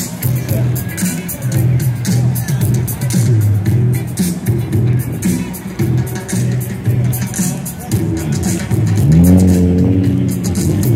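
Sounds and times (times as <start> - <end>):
music with steady beat: 0.0 - 10.9
car engine revving: 8.0 - 10.9.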